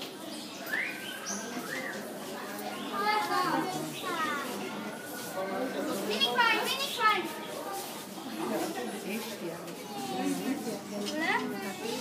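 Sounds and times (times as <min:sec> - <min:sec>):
children's voices: 0:00.0 - 0:08.2, 0:09.8 - 0:12.0
background chatter: 0:00.0 - 0:12.0.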